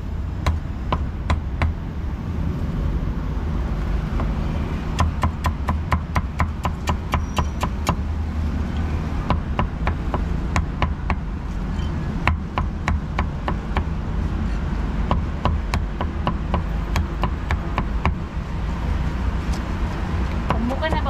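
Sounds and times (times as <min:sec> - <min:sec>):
steady low rumble: 0:00.0 - 0:07.1
cleaver chopping on a board: 0:05.0 - 0:08.0, 0:09.3 - 0:11.2, 0:12.2 - 0:13.9, 0:15.0 - 0:18.2.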